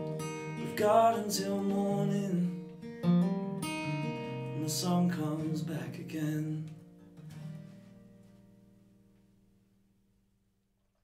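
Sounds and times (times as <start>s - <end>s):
acoustic guitar chord ringing: 0.0s - 10.1s.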